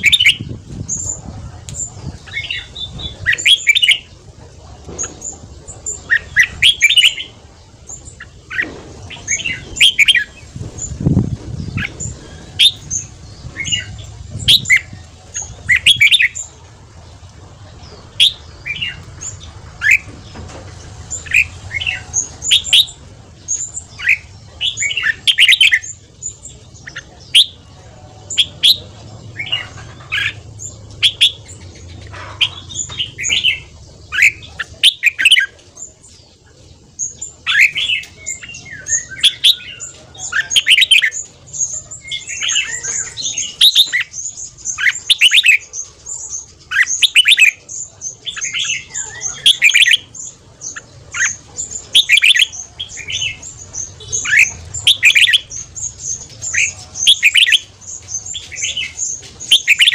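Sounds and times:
birds chirping and whistling: 0:00.0 - 0:59.9.

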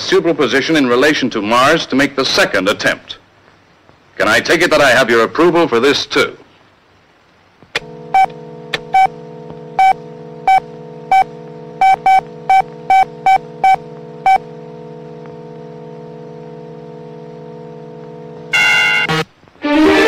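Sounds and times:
electronic hum: 0:07.8 - 0:20.0
harsh electronic tone: 0:08.0 - 0:20.0
short electronic beeps: 0:09.8 - 0:14.5.

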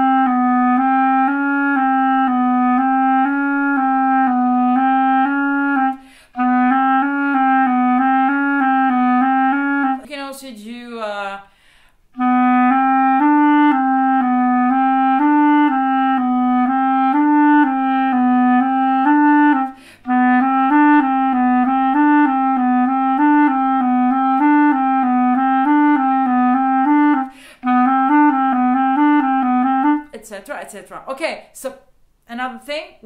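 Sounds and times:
clarinet playing fast exercise: 0:00.0 - 0:10.2, 0:12.2 - 0:30.2.

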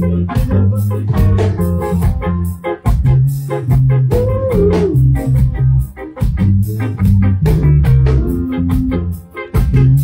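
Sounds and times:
bass guitar: 0:00.0 - 0:10.0
drum kit beat: 0:00.0 - 0:10.0
electric guitar: 0:00.0 - 0:10.0
keyboard: 0:00.0 - 0:10.0.

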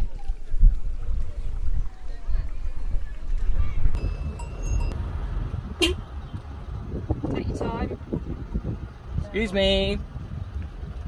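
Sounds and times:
wind rumbling on microphone: 0:00.0 - 0:11.0
high ringing tone: 0:04.0 - 0:05.2.

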